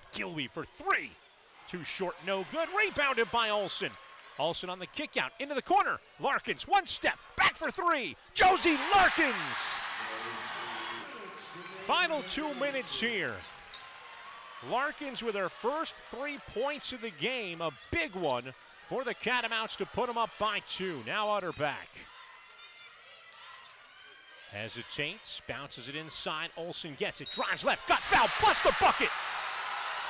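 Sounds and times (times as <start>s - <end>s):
arena crowd cheering: 0.8s - 25.2s, 27.2s - 30.0s
commentator speaking: 4.4s - 13.4s.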